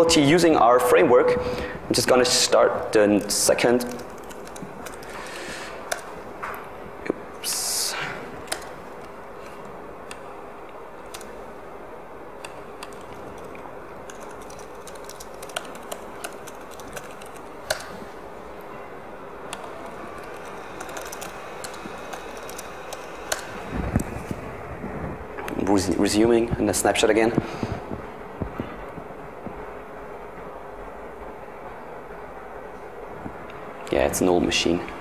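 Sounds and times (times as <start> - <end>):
steady room noise: 0.0 - 35.0.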